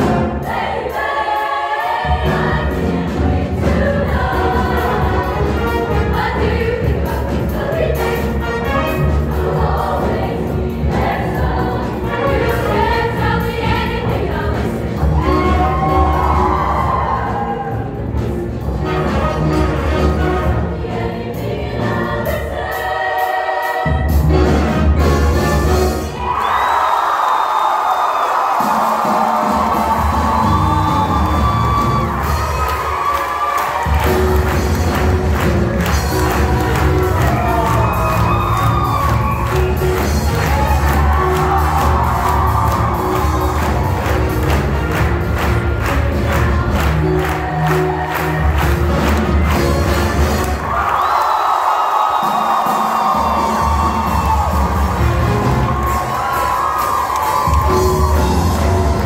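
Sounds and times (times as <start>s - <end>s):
women's choir singing: 0.0s - 17.9s, 20.1s - 24.1s
audience cheering and shouting: 14.6s - 19.6s, 25.6s - 59.0s
live band playing: 14.7s - 21.1s, 23.2s - 26.2s, 28.6s - 50.8s, 52.2s - 59.0s.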